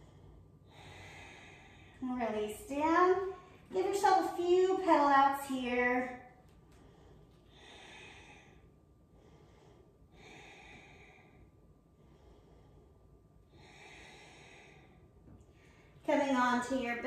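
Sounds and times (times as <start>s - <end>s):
faint slow breathing: 0.0s - 4.1s, 6.1s - 16.1s.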